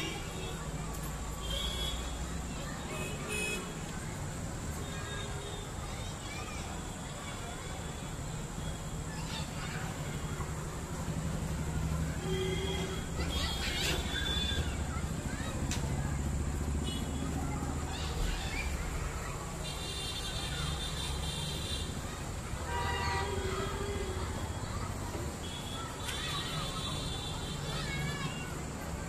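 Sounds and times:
distant traffic rumble: 5.7s - 29.0s.

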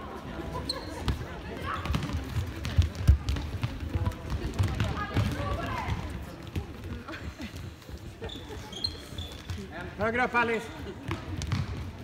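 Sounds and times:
ball kicked and bouncing: 1.0s - 7.1s, 11.0s - 12.0s.

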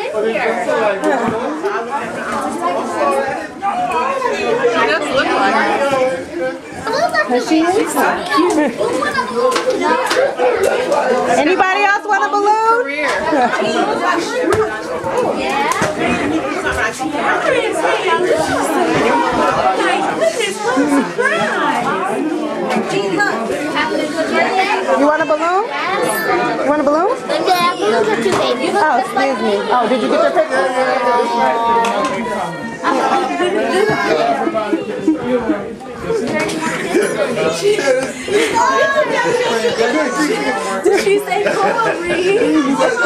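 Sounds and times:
overlapping party chatter: 0.0s - 43.0s
people laughing: 8.0s - 11.3s, 13.0s - 16.6s, 17.2s - 21.7s, 29.6s - 43.0s.

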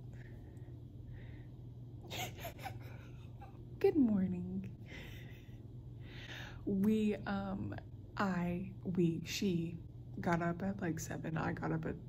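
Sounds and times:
low steady hum: 0.0s - 12.0s
woman's stifled laughter: 2.1s - 3.6s.

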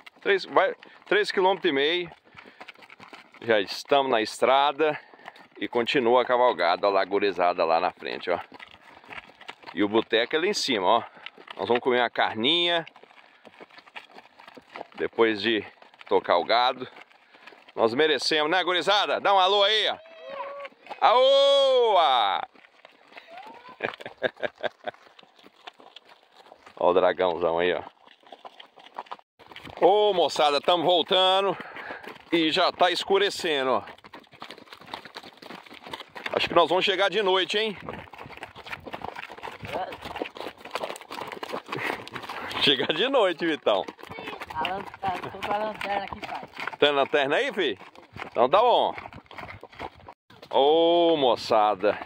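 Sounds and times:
hoofbeats on dirt road: 0.0s - 52.0s.

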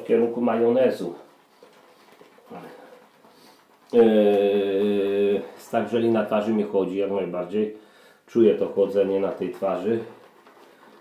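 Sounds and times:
shaving brush lathering soap: 0.0s - 7.5s, 8.6s - 11.0s.

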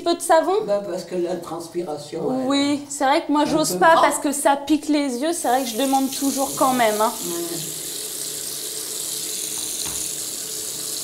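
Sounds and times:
tap running into washbasin: 5.6s - 11.0s.

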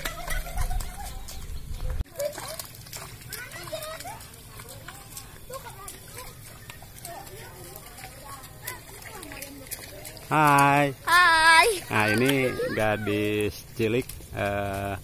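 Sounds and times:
children chattering and calling: 0.0s - 13.7s
footsteps squelching through mud: 0.0s - 15.0s.

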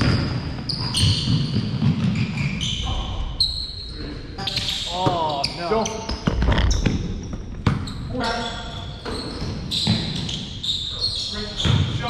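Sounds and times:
basketball dribbling on wood floor: 0.0s - 2.3s.

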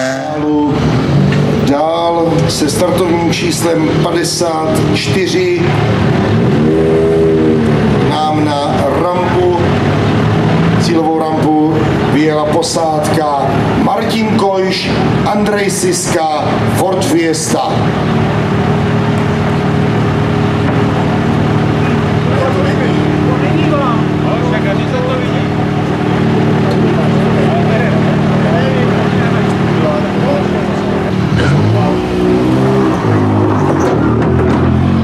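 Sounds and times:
car engine idling and revving: 0.0s - 35.0s.

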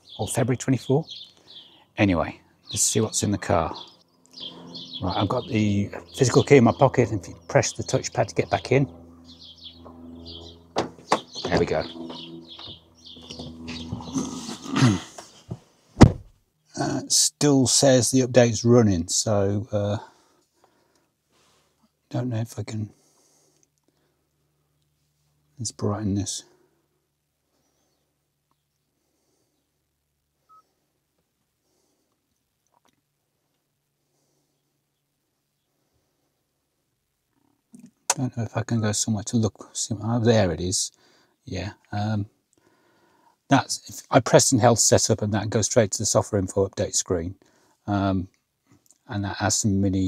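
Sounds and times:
birds chirping: 0.0s - 15.6s, 27.5s - 30.8s
steady low hum: 0.0s - 32.3s.

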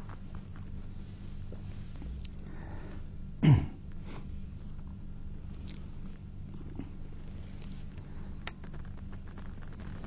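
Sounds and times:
low hum: 0.0s - 10.0s
elderly man coughing: 3.4s - 3.8s.

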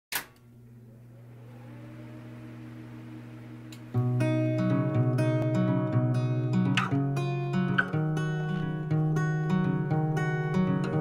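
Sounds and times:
low steady hum with held tones: 0.2s - 6.2s
faint rising tone: 0.8s - 6.5s.

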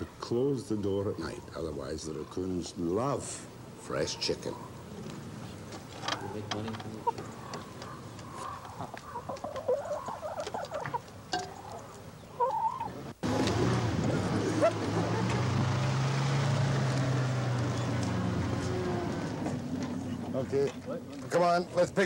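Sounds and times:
hens clucking: 4.0s - 13.6s.

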